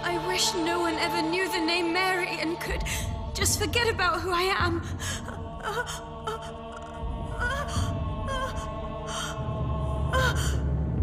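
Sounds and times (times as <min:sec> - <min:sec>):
dramatic background music: 0:00.0 - 0:11.0
woman gasping and sobbing: 0:04.8 - 0:09.5.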